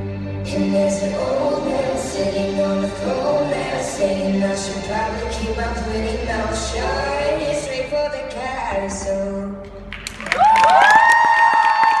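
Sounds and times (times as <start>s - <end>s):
handclaps: 9.9s - 12.0s
audience cheering: 10.0s - 12.0s
high-pitched whoops: 10.1s - 12.0s.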